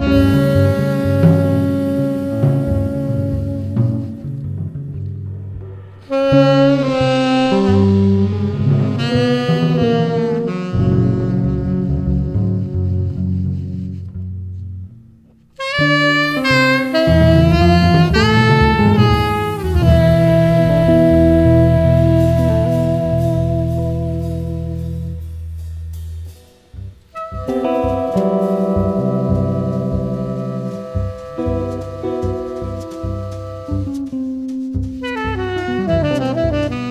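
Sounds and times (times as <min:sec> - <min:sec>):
saxophone melody: 0:00.0 - 0:04.6, 0:06.1 - 0:13.4, 0:15.6 - 0:25.2, 0:27.2 - 0:36.9
double bass: 0:00.0 - 0:36.9.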